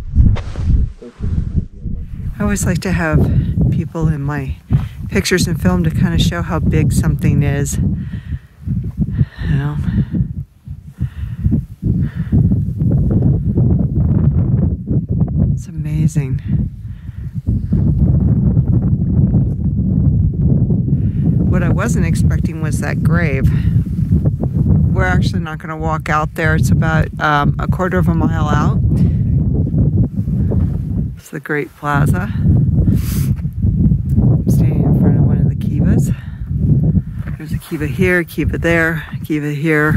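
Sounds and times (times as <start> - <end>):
wind buffeting a microphone: 0.0 - 39.9.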